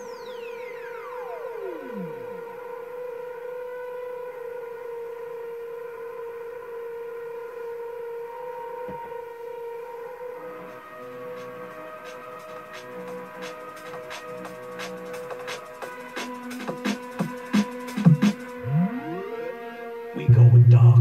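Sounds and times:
held synth tone: 0.0 - 3.2, 18.6 - 20.9
falling synth sweep: 0.0 - 7.0, 17.5 - 20.8
drum and bass track: 10.6 - 19.6.

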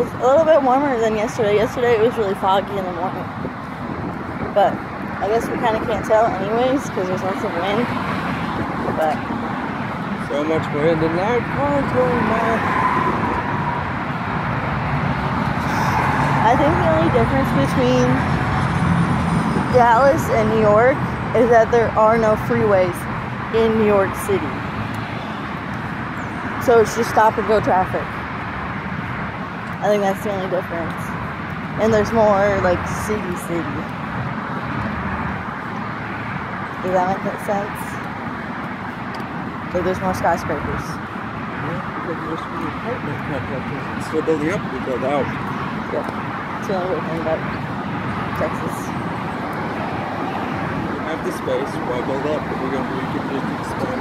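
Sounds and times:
wind on microphone: 0.0 - 25.6
road traffic: 0.0 - 54.0.

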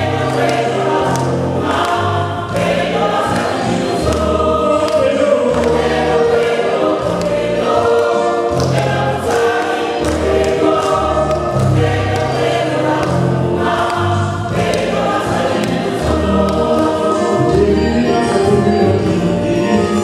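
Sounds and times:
mixed choir singing gospel: 0.0 - 20.0.

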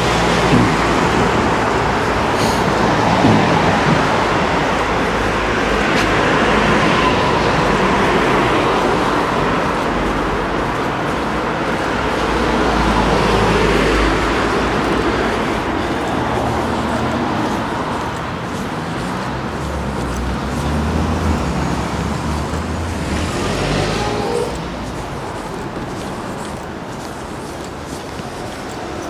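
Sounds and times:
low vehicle rumble: 0.0 - 28.6
cars driving past: 0.0 - 29.0.

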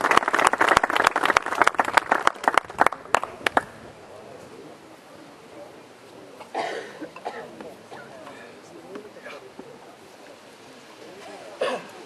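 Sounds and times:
indistinct talk: 2.4 - 12.0
person coughing loudly: 6.5 - 8.1, 11.6 - 11.9.

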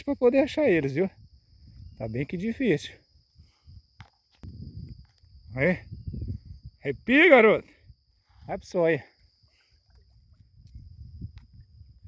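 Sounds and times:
insects droning: 0.0 - 12.0
soft rustling of fish and line: 0.4 - 6.8, 7.9 - 12.0.

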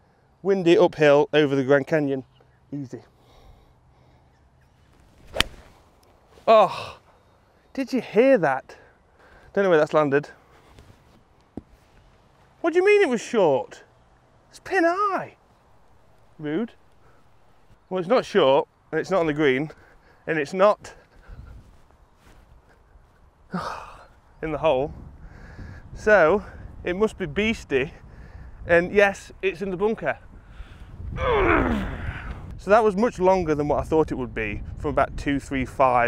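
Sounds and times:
golf club swish: 4.9 - 6.5
golf club striking ball: 5.2 - 5.7
wind rumble on microphone: 21.2 - 23.3, 24.7 - 36.0.

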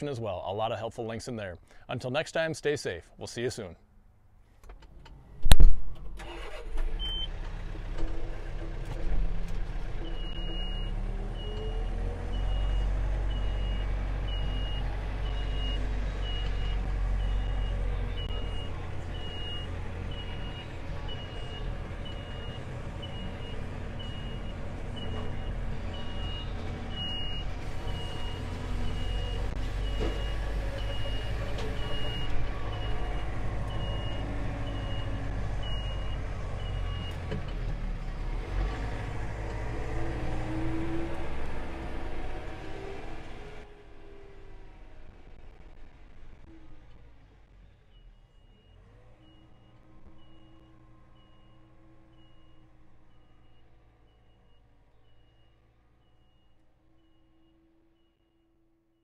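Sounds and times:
tractor engine running: 4.6 - 55.4
vehicle backup alarm beeping: 6.2 - 7.3, 10.0 - 37.3, 47.8 - 58.5.

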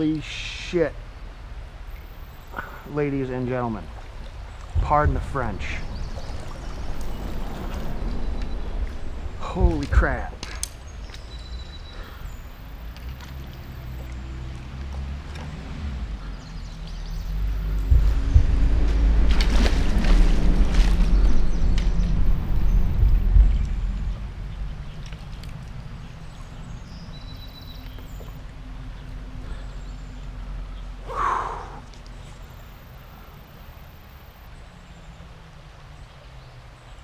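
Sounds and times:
water splashing: 1.9 - 29.6
wind buffeting microphone: 3.9 - 12.6, 15.8 - 27.5.

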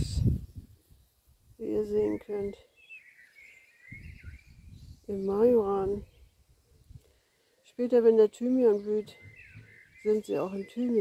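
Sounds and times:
songbird warbling: 1.7 - 7.5, 8.4 - 11.0.

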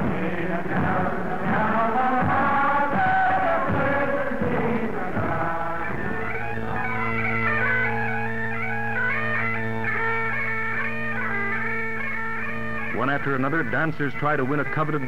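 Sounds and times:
bagpipes playing a quick tune: 1.0 - 15.0.

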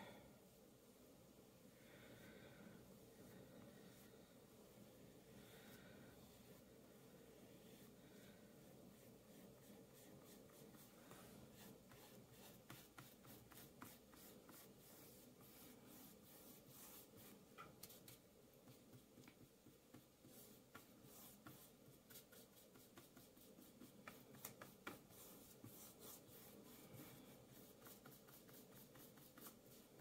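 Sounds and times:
paintbrush scratching on canvas: 8.6 - 18.1, 19.9 - 30.0.

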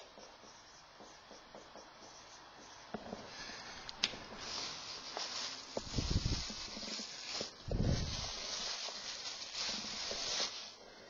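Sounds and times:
marker writing on whiteboard: 0.0 - 3.3.

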